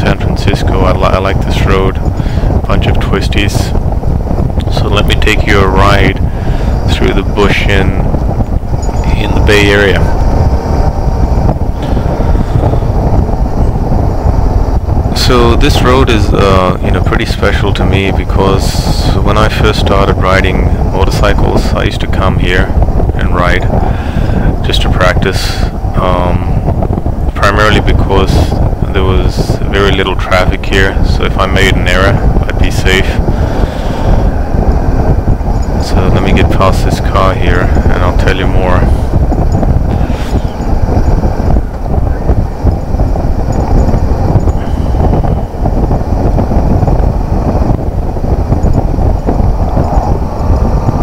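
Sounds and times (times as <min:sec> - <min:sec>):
wind rush on microphone: 0:00.0 - 0:51.0.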